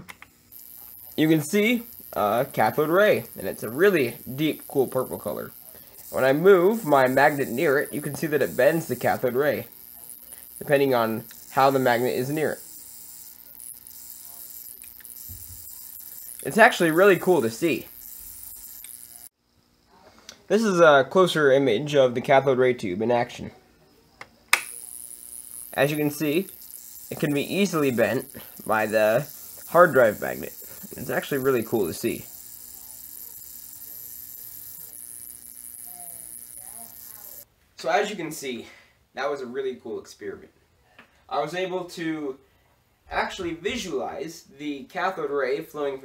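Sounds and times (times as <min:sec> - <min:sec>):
electrical buzz and hum: 0:00.0 - 0:19.3, 0:24.5 - 0:37.5
faint high whine: 0:00.4 - 0:19.7, 0:23.8 - 0:37.4.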